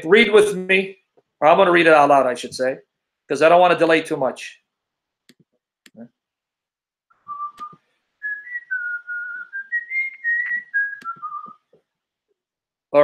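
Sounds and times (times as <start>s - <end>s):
man whistling a tune: 7.2s - 11.7s.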